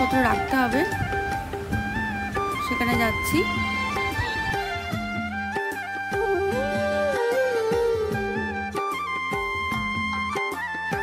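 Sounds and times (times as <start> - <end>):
instrumental melody over a beat: 0.0 - 11.0
steady beat: 4.6 - 10.1.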